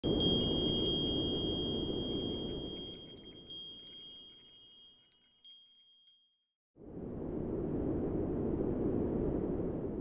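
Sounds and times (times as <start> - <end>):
chimes tinkling: 0.0 - 6.5
low rushing noise: 6.8 - 10.0.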